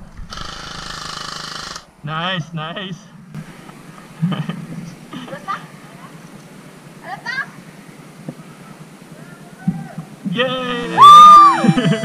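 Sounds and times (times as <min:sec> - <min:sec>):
airsoft rifle full-auto burst: 0:00.3 - 0:01.9.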